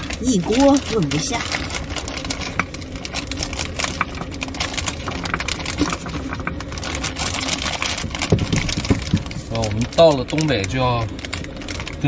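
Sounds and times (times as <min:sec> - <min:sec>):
plastic bag crinkling: 0:00.0 - 0:12.0
steady low hum: 0:00.0 - 0:12.0.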